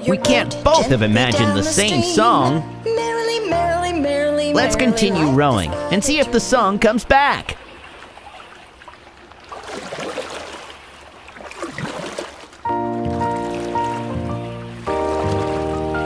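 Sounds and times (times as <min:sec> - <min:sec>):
background music with held chords: 0:00.0 - 0:06.8, 0:12.7 - 0:16.0
oar splashing through water: 0:04.7 - 0:16.0.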